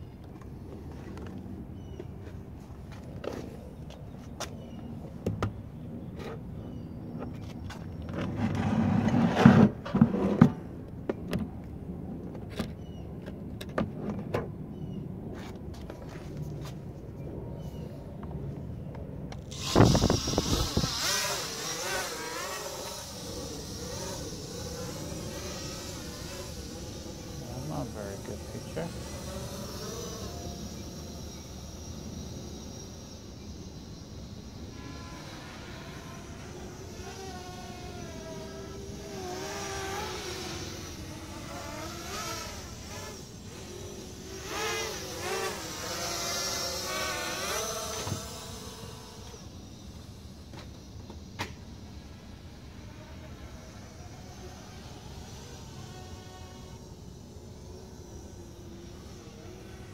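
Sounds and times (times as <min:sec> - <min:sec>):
quadcopter motors whirring: 0:00.0 - 0:59.9.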